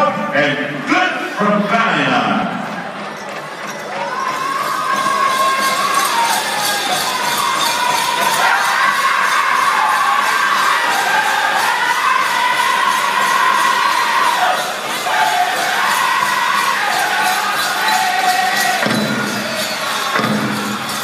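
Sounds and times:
bells jingling: 3.0s - 21.0s
group singing high voices: 4.9s - 21.0s
steady drumbeat: 5.0s - 21.0s.

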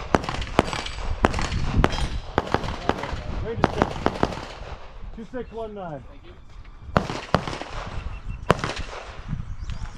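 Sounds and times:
sharp gunshots with echo: 0.0s - 5.0s, 6.9s - 9.3s.

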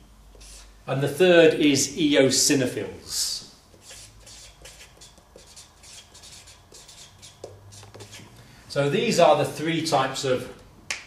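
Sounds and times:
marker pen writing on paper: 3.7s - 8.3s.

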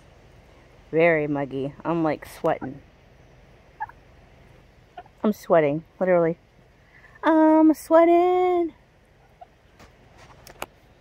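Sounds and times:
turkey call: 3.7s - 4.0s, 9.2s - 9.6s.

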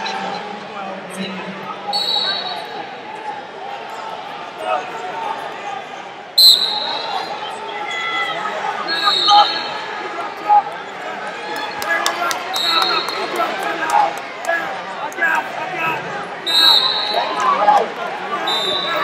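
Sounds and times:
referee's whistle: 1.9s - 2.8s, 6.4s - 7.6s, 8.8s - 9.8s, 12.5s - 13.4s, 16.4s - 17.5s, 18.4s - 19.0s
people shouting: 12.6s - 19.0s.

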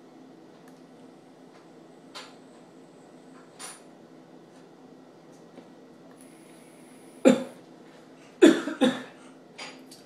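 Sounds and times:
man coughing: 7.3s - 7.6s, 8.4s - 9.2s.

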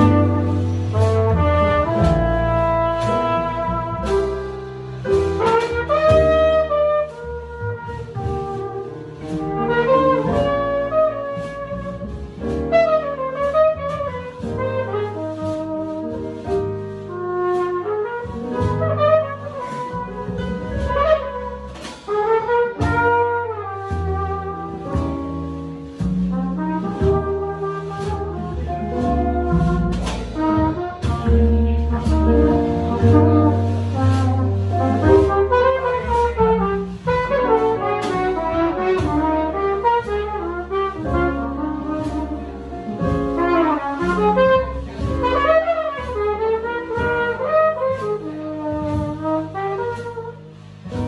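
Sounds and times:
drums with cymbal strokes: 0.0s - 51.0s
flugelhorn melody: 0.0s - 51.0s
piano: 0.0s - 51.0s
upright bass: 0.0s - 51.0s.

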